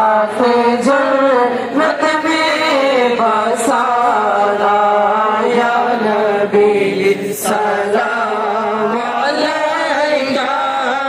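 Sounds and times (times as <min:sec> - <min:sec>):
person chanting over loudspeakers: 0:00.0 - 0:11.0.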